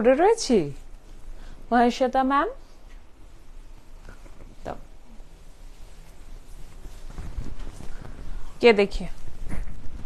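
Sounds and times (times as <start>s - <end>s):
cloth rustling: 2.7s - 10.0s.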